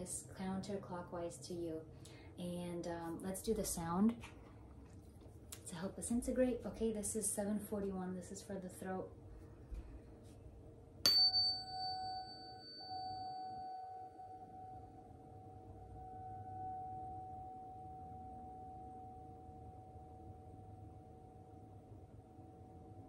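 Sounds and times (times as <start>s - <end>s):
tuning fork tap: 11.0s - 14.6s
tuning fork ringing tone: 11.0s - 23.0s.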